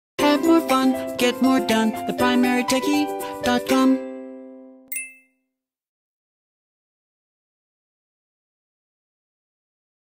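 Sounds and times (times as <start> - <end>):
bright chime ding: 4.9 - 5.4.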